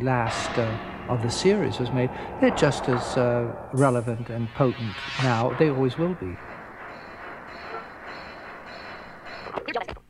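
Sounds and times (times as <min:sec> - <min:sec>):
distorted video transition: 0:00.0 - 0:09.5
steady rushing noise: 0:00.0 - 0:09.6.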